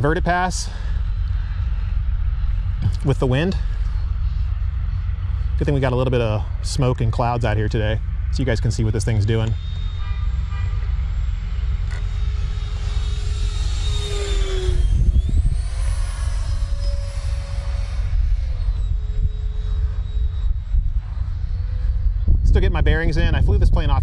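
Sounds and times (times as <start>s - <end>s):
model jet fan whining: 0.0s - 24.0s
wind rumbling on microphone: 0.0s - 24.0s.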